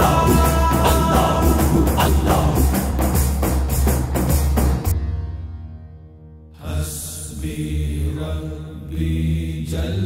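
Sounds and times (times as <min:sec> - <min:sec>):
deep male voices chanting: 0:00.0 - 0:02.9, 0:06.6 - 0:10.0.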